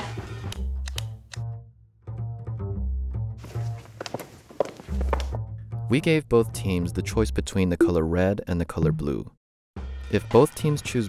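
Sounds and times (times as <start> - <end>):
footsteps on hard floor: 3.4 - 5.4.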